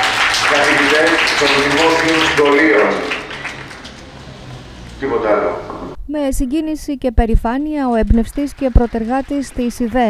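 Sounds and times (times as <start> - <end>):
faint scattered claps: 0.0 - 5.0, 8.0 - 10.0.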